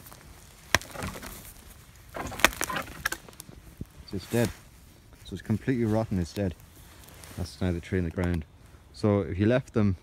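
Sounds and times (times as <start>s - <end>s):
wood and roots cracking: 0.0s - 9.8s.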